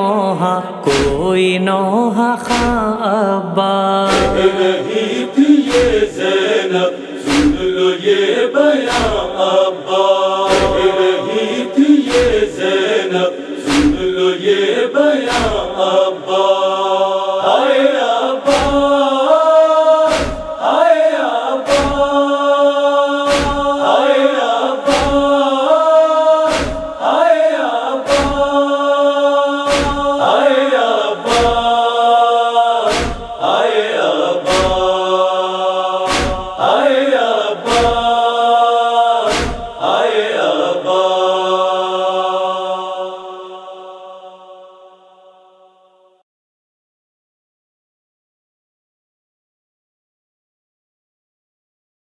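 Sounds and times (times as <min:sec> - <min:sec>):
wordless chorus of voices: 0:00.0 - 0:46.1
chest-beating strikes: 0:07.2 - 0:07.8, 0:10.5 - 0:11.4, 0:13.7 - 0:14.1, 0:20.1 - 0:20.5, 0:23.3 - 0:23.8, 0:26.5 - 0:27.0, 0:29.7 - 0:30.2, 0:32.9 - 0:33.4, 0:34.5 - 0:34.9, 0:36.1 - 0:36.6, 0:39.3 - 0:39.8.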